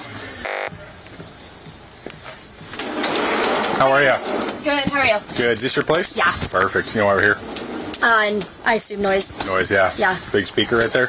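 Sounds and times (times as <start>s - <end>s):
sliding glass door opening: 2.7s - 11.0s.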